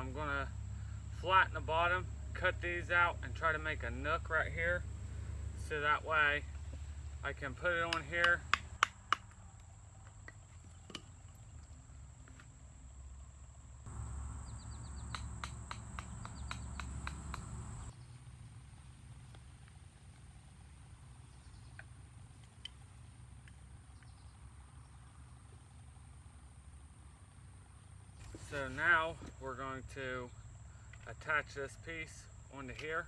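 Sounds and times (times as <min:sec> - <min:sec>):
high insect whine: 0:12.4 - 0:17.9.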